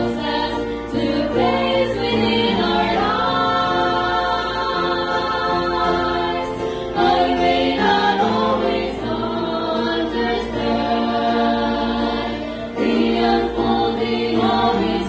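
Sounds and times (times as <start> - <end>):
women singing gospel song: 0.0 - 15.0.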